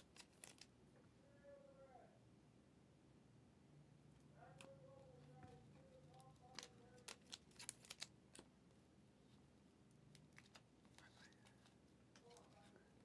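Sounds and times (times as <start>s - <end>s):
trading cards clicking: 6.1s - 8.5s.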